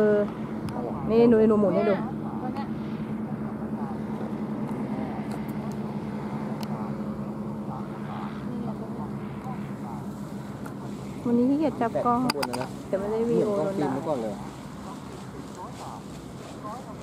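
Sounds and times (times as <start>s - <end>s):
paramotor engine droning overhead: 0.0s - 17.0s.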